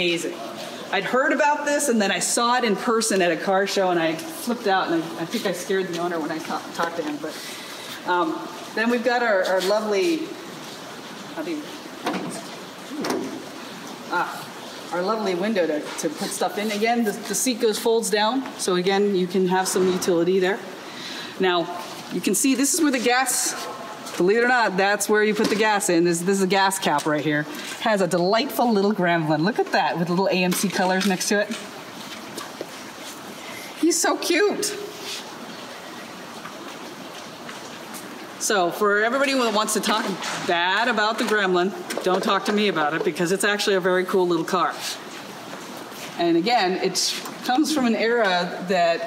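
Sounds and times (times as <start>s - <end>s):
room noise hiss: 0.0s - 49.0s.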